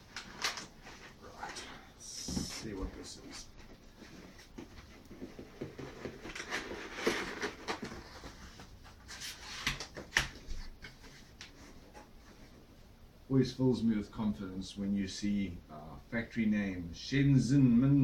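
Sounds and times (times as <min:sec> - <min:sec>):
cardboard flaps scraping and rustling: 0:02.2 - 0:12.6.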